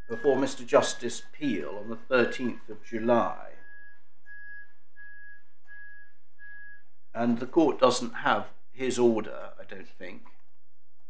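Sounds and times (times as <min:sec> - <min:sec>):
high electronic beeps: 0:00.0 - 0:00.7
steady low hum: 0:00.0 - 0:11.0.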